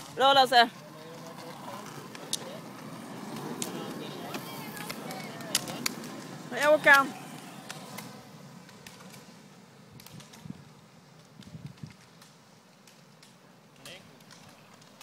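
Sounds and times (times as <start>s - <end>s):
faint roadside ambience: 0.0s - 15.0s.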